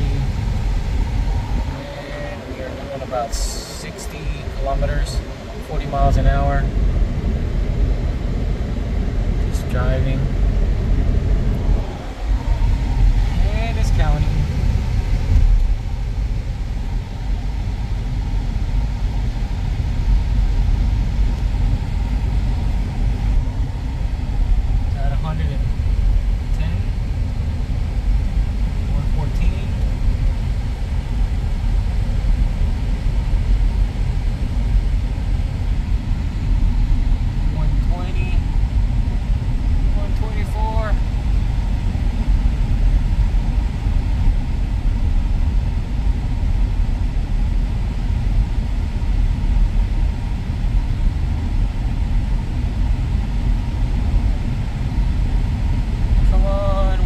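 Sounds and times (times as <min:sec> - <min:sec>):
road and engine rumble inside car: 0:00.0 - 0:57.0.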